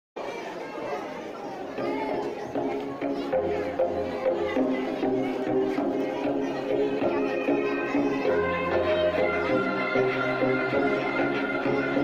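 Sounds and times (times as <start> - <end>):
children talking: 0.2 - 12.0.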